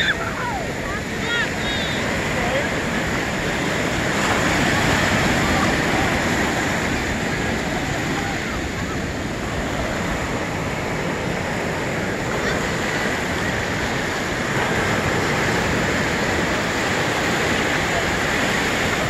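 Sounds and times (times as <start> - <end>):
ocean surf breaking: 0.0 - 19.0.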